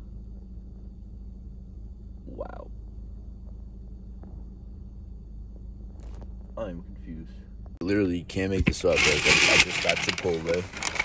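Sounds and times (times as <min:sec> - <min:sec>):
low rumble in car cabin: 0:00.0 - 0:10.8.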